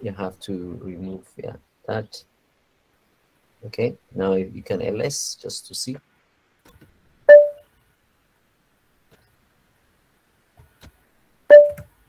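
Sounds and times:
short electronic beep: 7.3s - 7.6s, 11.5s - 11.8s.

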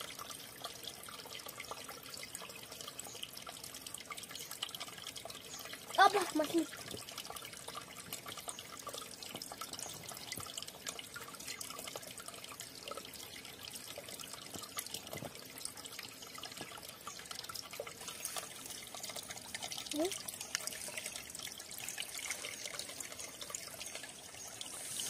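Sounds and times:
stream trickling over rocks: 0.0s - 25.0s.

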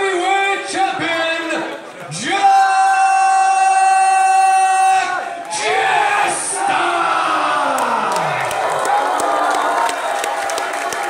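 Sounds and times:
man announcing over loudspeaker: 0.0s - 8.4s.

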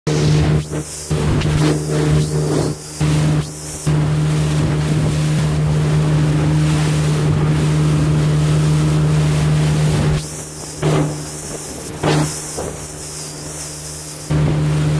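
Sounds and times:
outboard motor droning: 0.1s - 14.9s
water along boat hull: 0.1s - 14.9s
wind on microphone: 0.2s - 14.9s.

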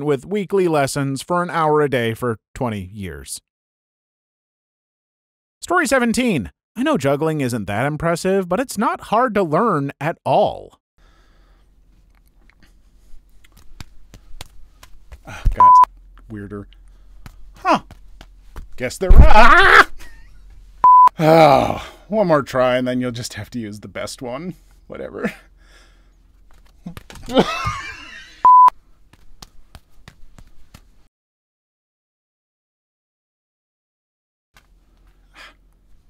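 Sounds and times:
faint clicks and taps: 11.9s - 18.8s, 29.1s - 30.9s
light sharp taps: 13.4s - 15.2s.

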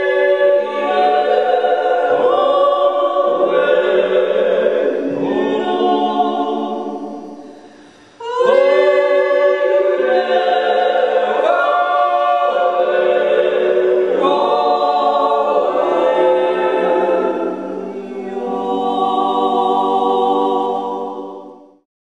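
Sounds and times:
vocal group yodelling in harmony: 0.0s - 7.5s, 8.2s - 21.8s.

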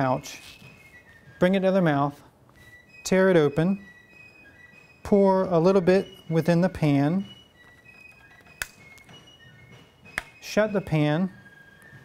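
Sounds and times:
musket lock clicking: 7.9s - 9.1s, 10.2s - 10.4s.

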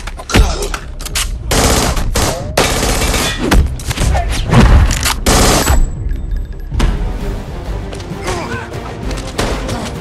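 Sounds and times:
rapid gunfire: 1.5s - 3.4s, 5.3s - 5.6s.

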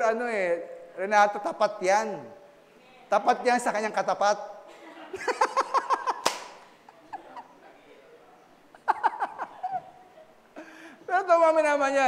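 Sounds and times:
man laughing: 5.1s - 6.3s, 8.8s - 9.9s.

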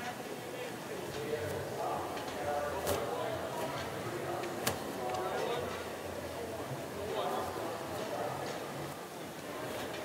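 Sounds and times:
indistinct voices in an arena: 0.0s - 10.0s.

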